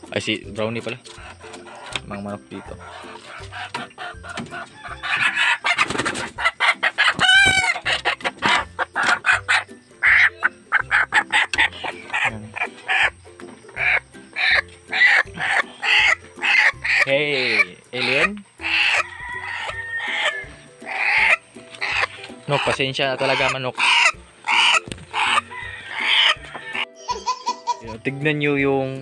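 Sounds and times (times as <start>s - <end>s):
background music with steady beat: 0.0s - 29.0s
chicken squawking: 1.1s - 28.0s.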